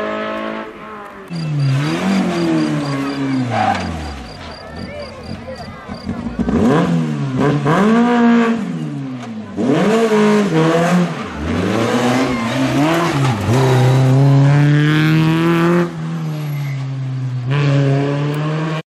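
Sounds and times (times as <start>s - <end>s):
rally car engine revving: 0.0s - 18.8s.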